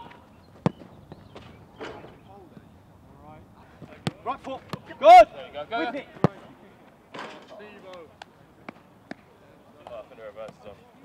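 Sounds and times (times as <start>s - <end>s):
boot kicking football: 0.1s - 1.6s.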